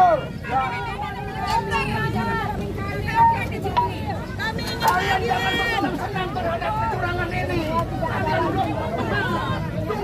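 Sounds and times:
protest crowd shouting: 0:00.0 - 0:10.0
rumble of crowd noise: 0:00.0 - 0:10.0.

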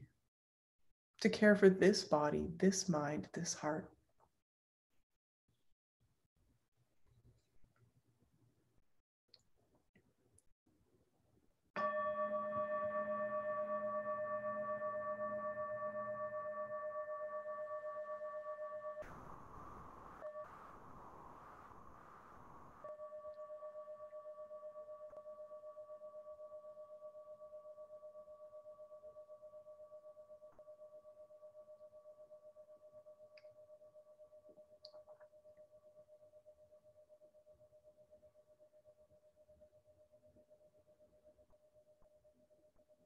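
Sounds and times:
singing bowl ringing: 0:11.8 - 0:20.9, 0:22.8 - 0:34.7.

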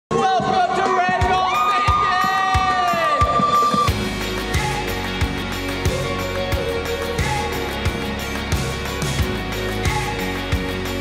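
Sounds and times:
young people cheering and yelling: 0:00.2 - 0:04.0.

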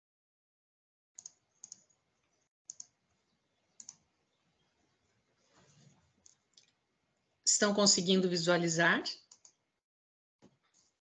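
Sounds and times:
computer mouse clicks: 0:01.2 - 0:03.0, 0:03.7 - 0:04.1, 0:06.2 - 0:06.8, 0:09.2 - 0:09.6
soft rustle: 0:05.2 - 0:06.2.

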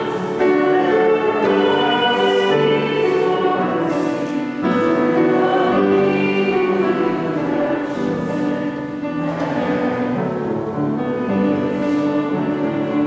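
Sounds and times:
choir singing a slow hymn: 0:00.0 - 0:13.0
instrumental accompaniment: 0:00.0 - 0:13.0.

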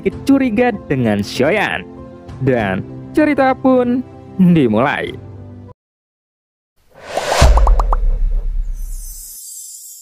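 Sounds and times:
rising whoosh: 0:07.0 - 0:09.2
deep bass boom: 0:07.3 - 0:09.0.

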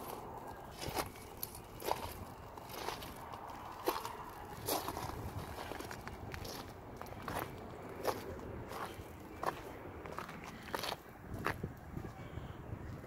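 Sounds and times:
footsteps crunching on gravel: 0:00.0 - 0:12.1.

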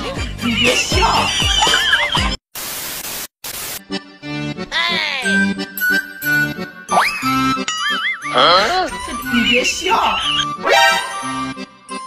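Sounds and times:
background music: 0:00.0 - 0:02.4, 0:03.8 - 0:12.0
tv static hiss: 0:02.6 - 0:03.8.

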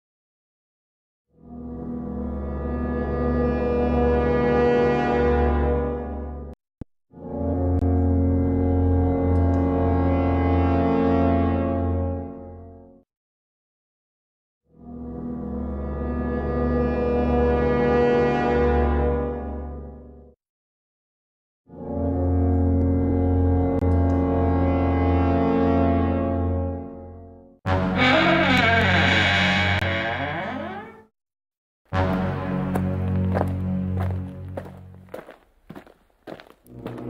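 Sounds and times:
low brassy drone: 0:27.7 - 0:30.9
footsteps walking: 0:32.1 - 0:37.0.

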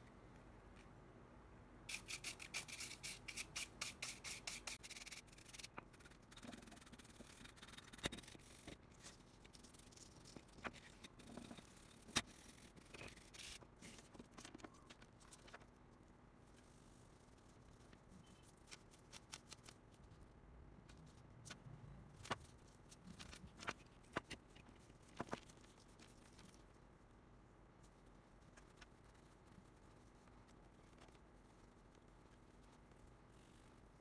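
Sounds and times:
paintbrush brushing circuit board: 0:01.9 - 0:14.1.

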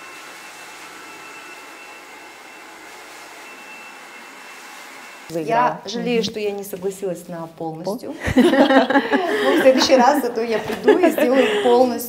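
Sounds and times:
hair dryer running: 0:00.0 - 0:05.4.

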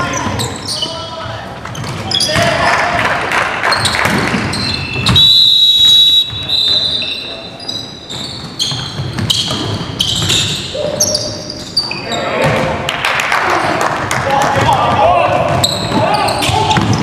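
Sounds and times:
players' voices: 0:00.0 - 0:08.0, 0:10.7 - 0:17.0.

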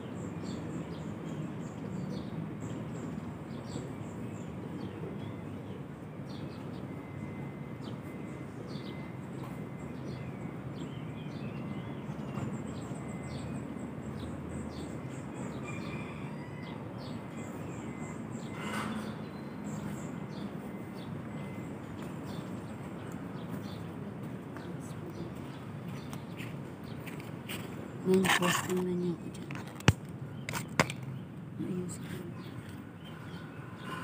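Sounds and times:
small birds chirping: 0:00.0 - 0:34.0.

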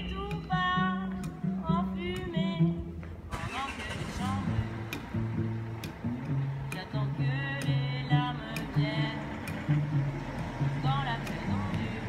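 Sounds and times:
cello playing: 0:00.0 - 0:12.0
traffic rushing: 0:03.0 - 0:12.0.

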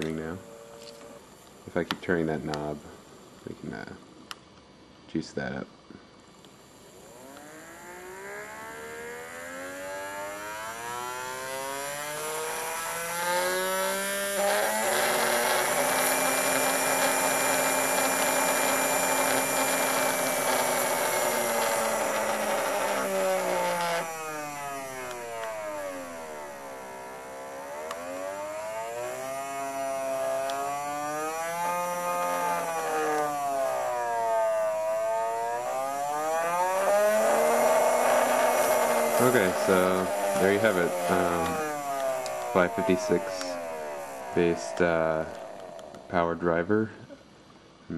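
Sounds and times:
electric motor whine: 0:00.0 - 0:01.6, 0:06.6 - 0:46.6.

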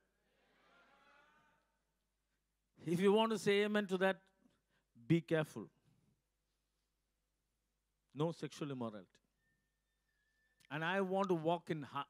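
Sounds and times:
man speaking into a microphone: 0:02.8 - 0:04.3, 0:05.0 - 0:05.8, 0:08.2 - 0:09.2, 0:10.7 - 0:12.0.

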